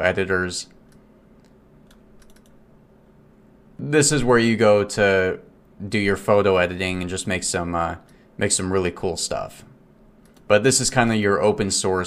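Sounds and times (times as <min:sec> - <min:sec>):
faint computer clicks: 0:00.7 - 0:02.6, 0:10.2 - 0:10.5.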